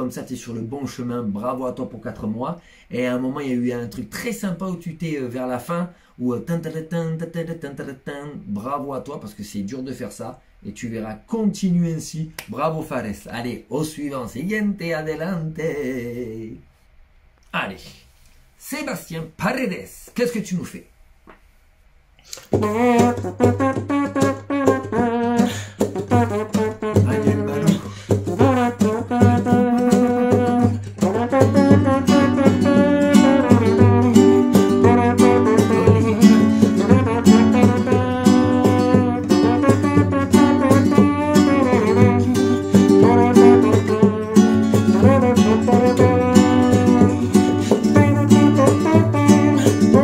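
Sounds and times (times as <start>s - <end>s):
flamenco guitar strumming: 22.4s - 50.0s
voice imitating a brass horn: 22.5s - 50.0s.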